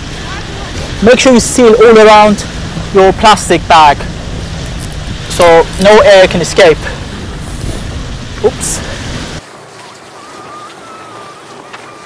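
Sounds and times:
surf hissing on beach: 0.0s - 12.0s.

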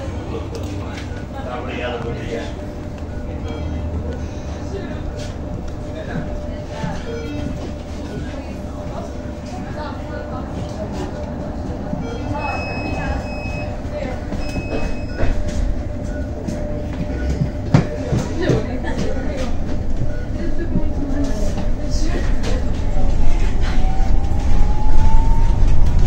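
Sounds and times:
bus whine and rumble: 0.0s - 26.0s
short high beeps: 12.0s - 13.8s
knocks and rattles over cobblestones: 13.7s - 24.6s.

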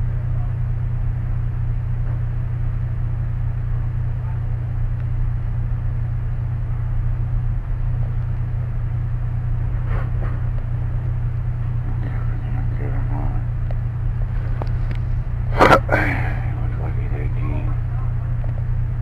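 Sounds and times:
vehicle engine idling: 0.0s - 19.0s.

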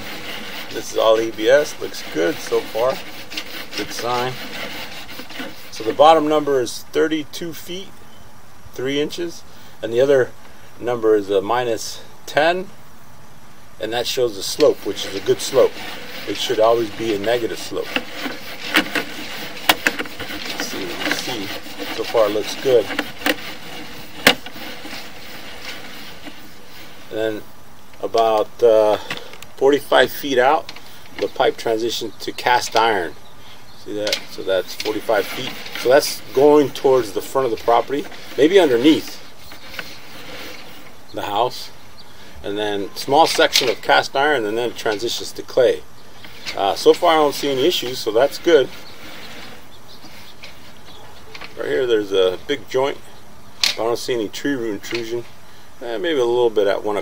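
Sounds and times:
steady background hiss: 0.0s - 57.0s.

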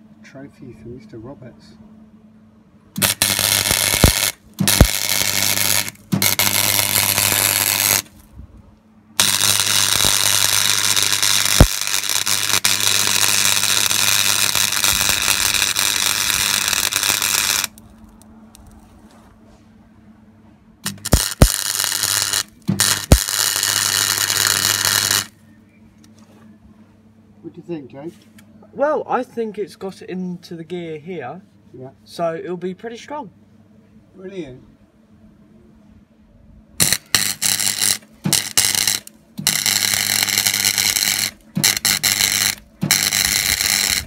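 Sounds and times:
steady hum: 0.0s - 44.0s
welder arc crackling: 3.0s - 8.3s, 9.2s - 18.8s, 20.8s - 25.3s, 36.8s - 44.0s.

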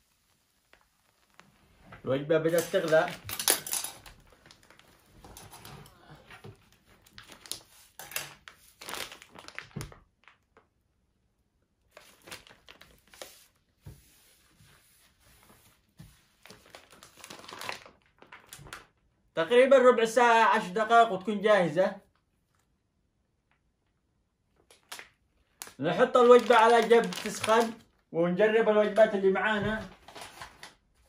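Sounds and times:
plastic bag crinkling: 2.4s - 10.7s, 11.9s - 13.6s, 16.4s - 19.0s, 24.6s - 28.0s, 29.0s - 30.9s.

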